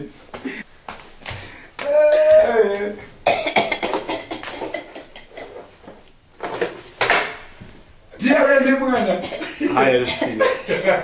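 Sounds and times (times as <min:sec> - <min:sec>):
man laughing: 0:09.0 - 0:11.0.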